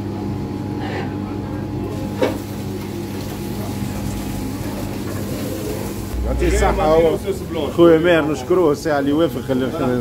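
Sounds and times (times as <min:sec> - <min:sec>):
low machine hum: 0:02.6 - 0:08.8.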